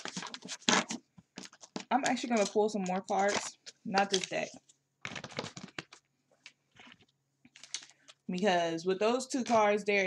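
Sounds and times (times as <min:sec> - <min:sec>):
soft card rustle: 0:00.0 - 0:08.6.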